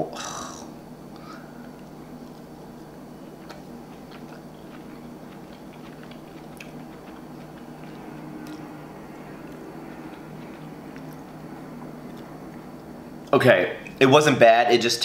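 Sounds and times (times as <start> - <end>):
man chewing food: 0.0 - 14.0
steady low hum: 0.0 - 15.0.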